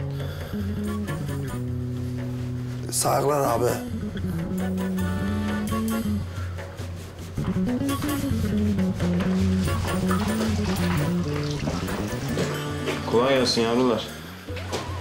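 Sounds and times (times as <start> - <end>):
slow melody over low bass: 0.0 - 14.6.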